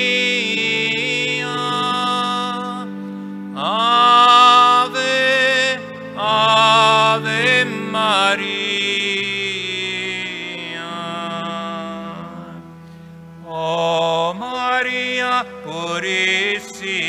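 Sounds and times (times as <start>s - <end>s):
hymn sung in a church: 0.0s - 17.0s.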